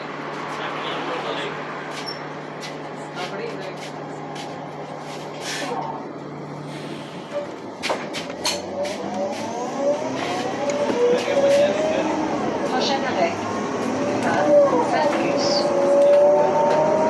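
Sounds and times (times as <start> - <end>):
vehicle whine gliding in pitch: 8.6 - 17.0.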